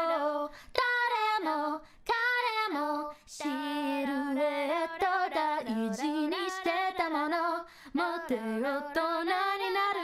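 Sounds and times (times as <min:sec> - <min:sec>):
woman singing a cappella: 0:00.0 - 0:10.0
singer breathing: 0:00.5 - 0:00.8, 0:07.6 - 0:08.0.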